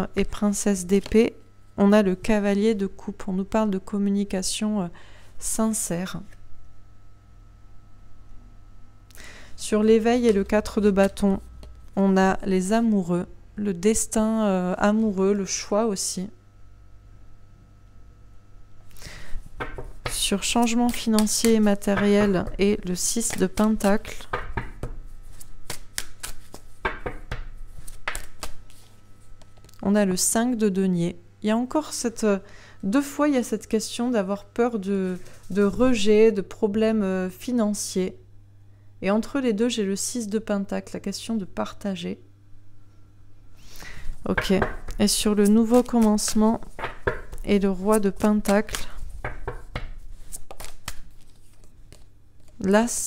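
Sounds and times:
cards being shuffled: 23.0 - 29.8, 44.1 - 52.7
cards clicking and snapping: 25.3 - 28.7, 48.2 - 52.5.

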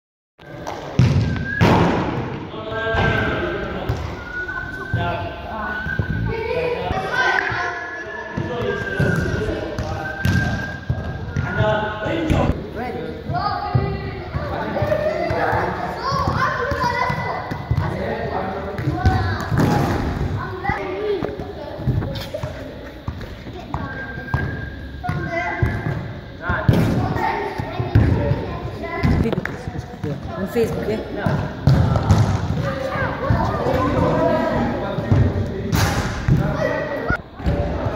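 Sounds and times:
ball thudding in echoing hall: 0.5 - 5.1, 8.4 - 37.9
voices: 2.5 - 37.9.

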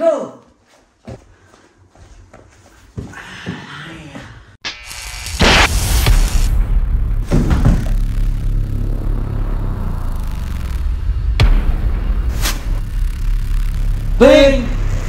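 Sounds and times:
booming hits: 5.2 - 15.0.

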